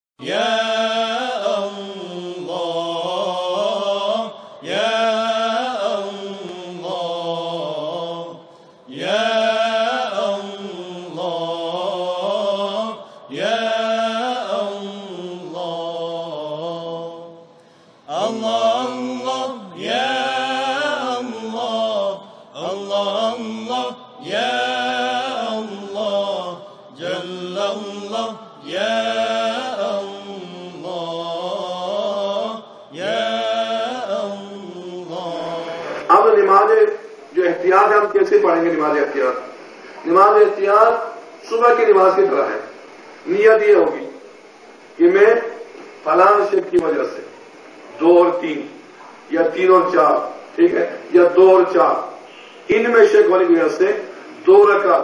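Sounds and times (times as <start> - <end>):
person chanting: 0.2 - 17.4, 18.1 - 42.7.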